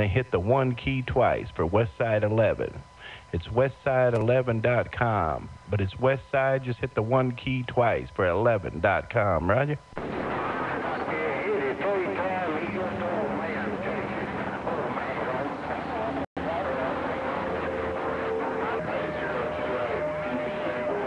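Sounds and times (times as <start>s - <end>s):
garbled overlapping radio voices: 0.0s - 21.0s.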